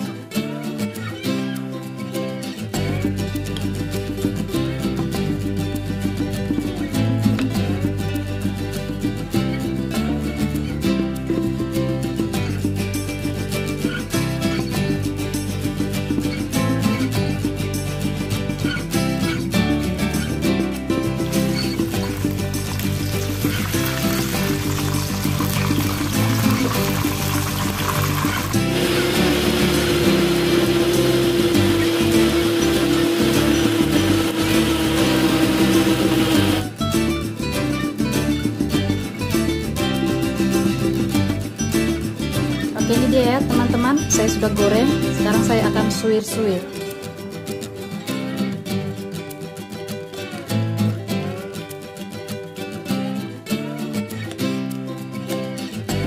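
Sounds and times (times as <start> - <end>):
plucked-string background music: 0.0 - 56.0
electric blender grinding: 21.7 - 36.7.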